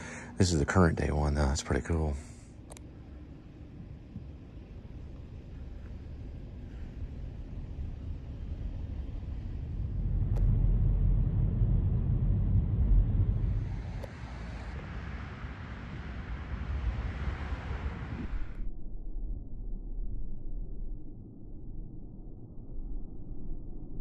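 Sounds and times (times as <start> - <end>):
car road and engine rumble: 0.0 - 18.6
higher hiss: 13.4 - 18.6.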